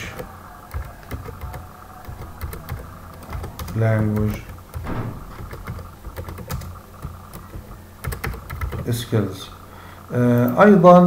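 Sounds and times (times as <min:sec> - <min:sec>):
keyboard keys clicking: 0:00.0 - 0:08.9.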